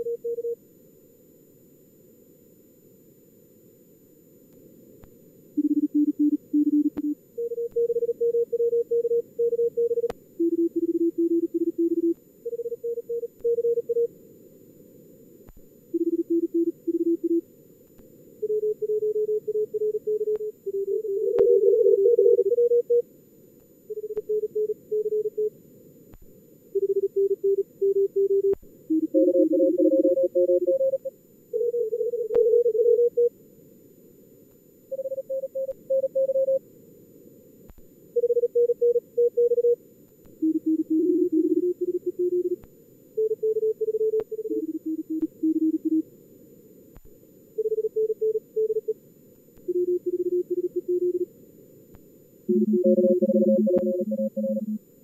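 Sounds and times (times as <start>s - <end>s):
morse code tones: 5.6s - 14.1s, 16.0s - 17.4s, 18.5s - 23.0s, 26.8s - 33.3s, 40.4s - 42.6s, 43.2s - 46.0s, 49.7s - 51.3s, 52.5s - 54.8s.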